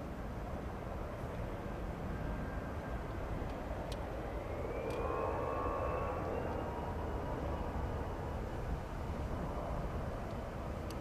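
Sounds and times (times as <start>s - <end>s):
steady engine rumble: 0.0s - 11.0s
jet engines spooling up: 1.2s - 11.0s.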